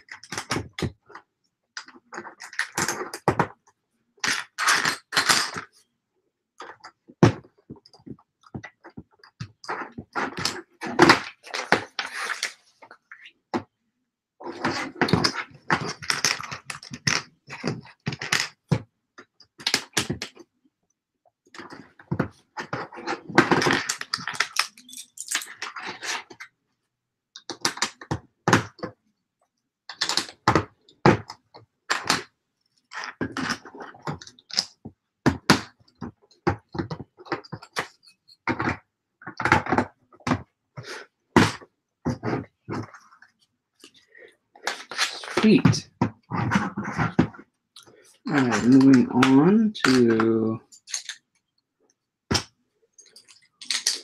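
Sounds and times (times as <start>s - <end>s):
plastic toy bricks clicking: 53.0s - 54.0s.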